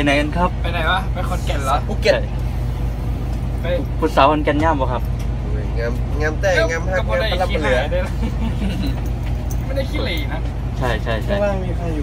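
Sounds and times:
bus engine rumble: 0:00.0 - 0:12.0
road noise: 0:00.0 - 0:12.0.

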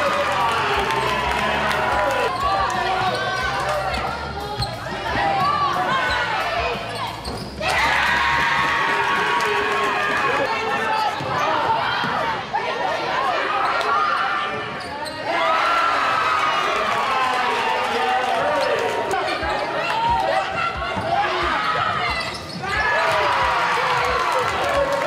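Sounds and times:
sneakers squeaking: 0:02.3 - 0:07.7, 0:14.5 - 0:15.3, 0:18.5 - 0:23.0.

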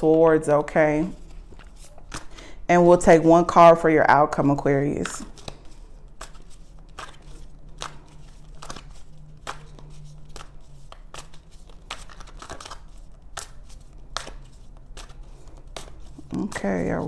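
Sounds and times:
low steady hum: 0:00.0 - 0:17.0
cards being shuffled: 0:00.6 - 0:02.6, 0:04.9 - 0:17.0.

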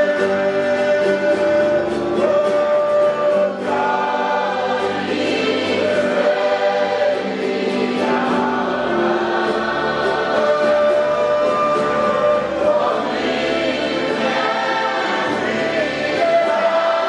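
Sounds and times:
group singing gospel song: 0:00.0 - 0:17.0.

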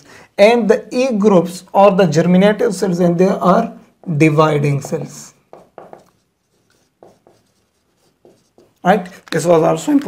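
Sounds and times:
marker writing on a board: 0:03.2 - 0:10.0.

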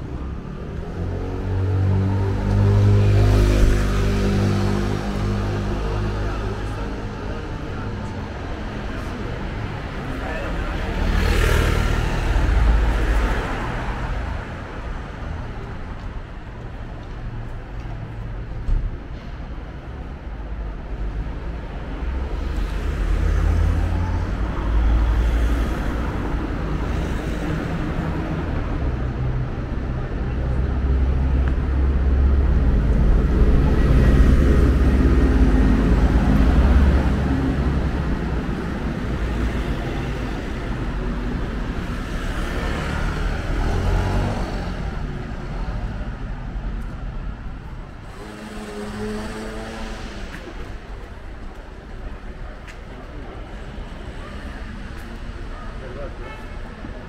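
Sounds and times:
street traffic: 0:00.0 - 0:57.0
people talking: 0:05.5 - 0:11.5
bus engine rumble: 0:12.0 - 0:57.0.

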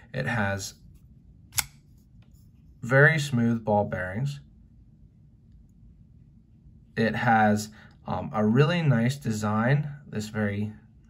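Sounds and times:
folding knife click: 0:01.5 - 0:01.8.

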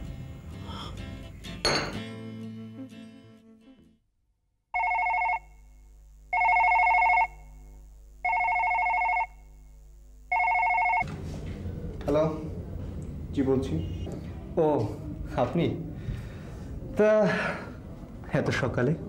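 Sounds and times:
background music: 0:00.0 - 0:04.0
electronic telephone ringing: 0:04.8 - 0:05.6, 0:06.3 - 0:07.5, 0:08.2 - 0:09.4, 0:10.3 - 0:11.0.

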